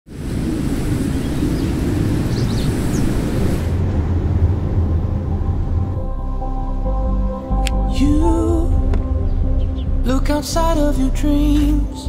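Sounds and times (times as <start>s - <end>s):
steady rush of wind: 0.1s - 8.0s.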